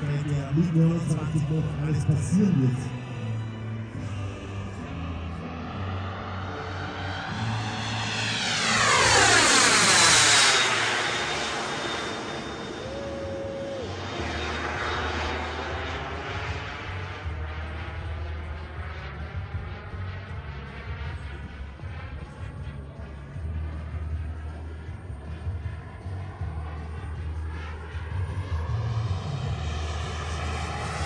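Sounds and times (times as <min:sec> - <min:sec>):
jet turbine engines whining: 0:00.0 - 0:31.0.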